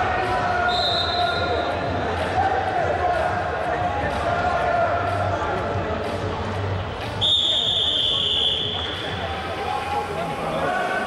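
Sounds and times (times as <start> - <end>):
murmur of voices: 0.0 - 11.0
referee's whistle blast: 0.7 - 1.6, 7.2 - 9.0.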